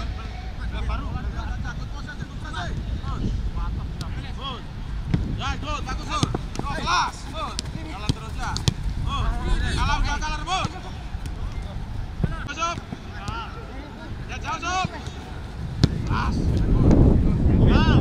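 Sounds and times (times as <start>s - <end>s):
footballers shouting calls: 0.0s - 18.0s
wind rumble on microphone: 0.0s - 18.0s
ball kicked with thuds: 6.1s - 8.9s, 14.8s - 17.0s.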